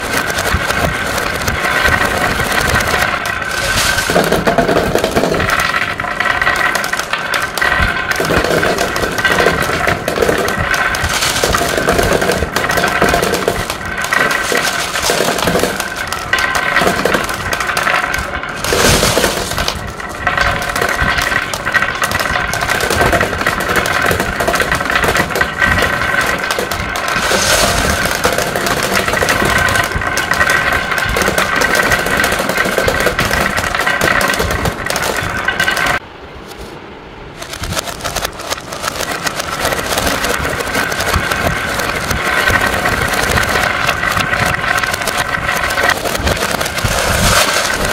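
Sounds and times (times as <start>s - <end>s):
glass marbles rolling on wood: 0.0s - 36.0s, 37.4s - 47.9s
marbles clicking: 0.0s - 36.1s, 37.4s - 47.9s.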